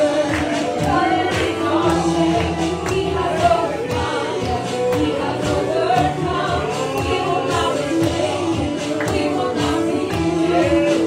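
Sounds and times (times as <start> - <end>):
choir singing gospel: 0.0 - 11.0
keyboard and drums band: 0.0 - 11.0.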